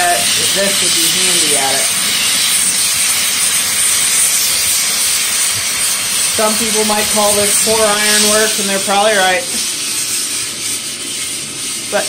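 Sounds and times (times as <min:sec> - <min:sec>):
gas torch flame hissing: 0:00.0 - 0:12.0.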